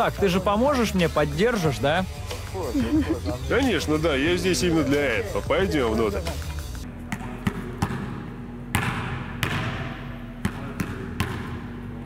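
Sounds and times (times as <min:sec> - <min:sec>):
basketball bouncing on gym floor: 0:07.1 - 0:11.9.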